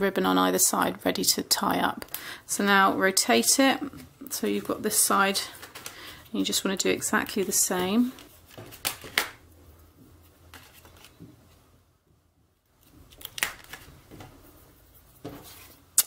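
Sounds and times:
paper rustling: 5.4s - 6.2s, 7.4s - 9.4s, 10.2s - 11.6s, 12.8s - 15.9s.

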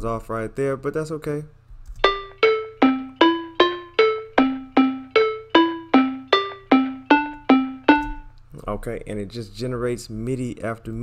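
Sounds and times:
synth plucked melody: 2.0s - 8.3s.

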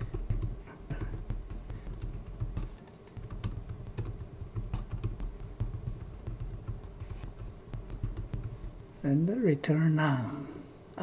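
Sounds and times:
computer keyboard typing: 0.0s - 8.9s.

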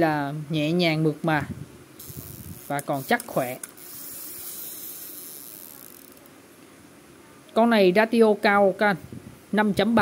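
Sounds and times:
fishing reel whirring: 2.0s - 6.3s.

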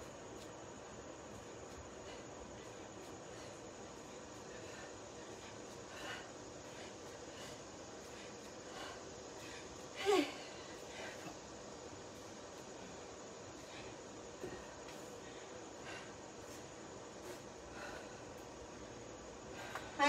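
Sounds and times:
faint breaths: 0.0s - 20.0s.

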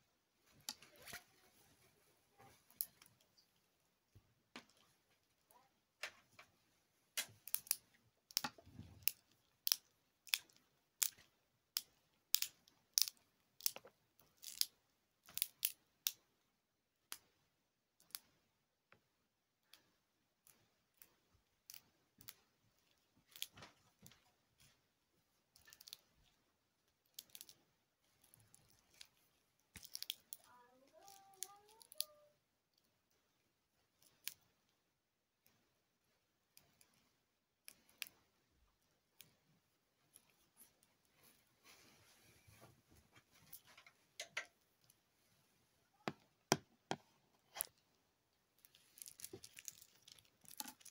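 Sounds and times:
glow sticks snapping: 7.2s - 16.2s.

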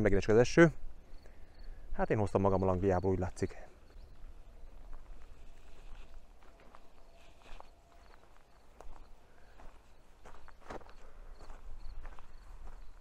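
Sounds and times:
footsteps on gravel: 3.9s - 13.0s.

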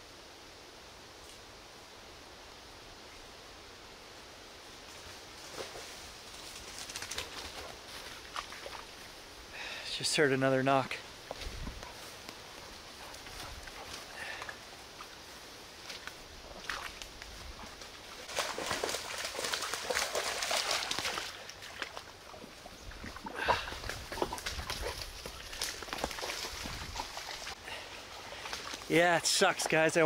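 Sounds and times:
dog splashing through water: 15.9s - 27.6s.

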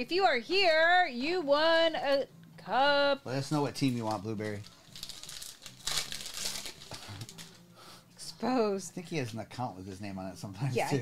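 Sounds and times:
wrapper tearing and crinkling: 3.8s - 7.6s.

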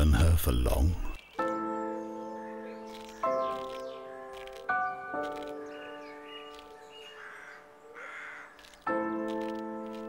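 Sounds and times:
crow cawing: 7.0s - 8.7s.

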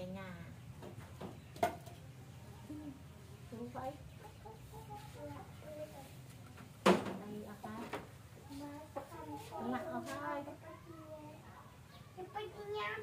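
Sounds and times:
chickens clucking: 0.8s - 10.9s.

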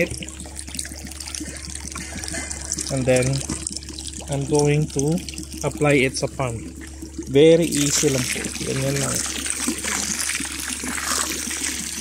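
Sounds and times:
water splashing onto pond: 0.0s - 12.0s.

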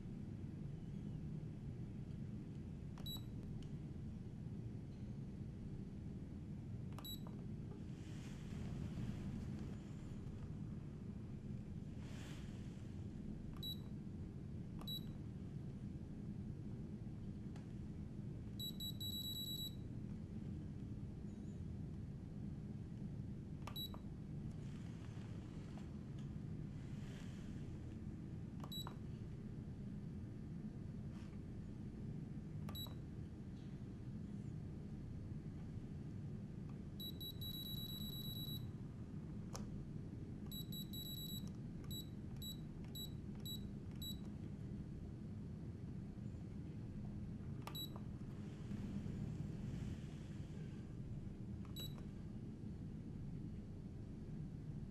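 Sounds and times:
low steady hum: 0.0s - 54.9s
high electronic key beeps: 18.6s - 19.8s, 37.0s - 38.6s, 40.5s - 44.2s, 47.7s - 48.0s.

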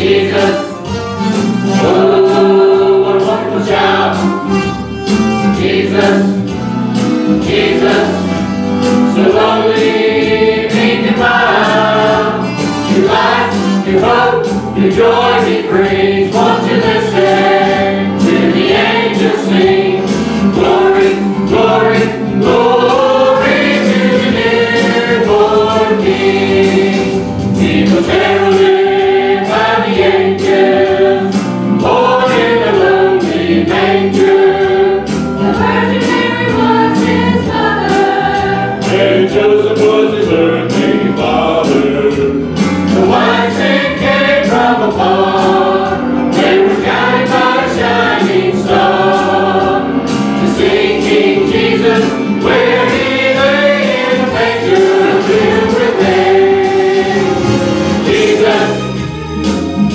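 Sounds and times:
choir singing a hymn: 0.0s - 1.0s, 1.7s - 4.6s, 5.4s - 6.6s, 7.2s - 59.2s
accompaniment with steady beat: 0.0s - 59.9s.

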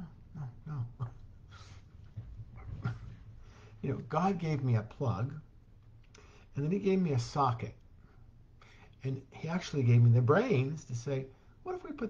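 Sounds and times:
man speaking softly: 0.0s - 1.2s, 9.0s - 12.0s.

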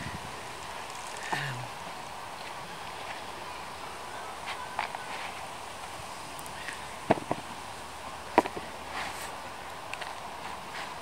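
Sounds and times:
steady breeze: 0.0s - 11.0s.

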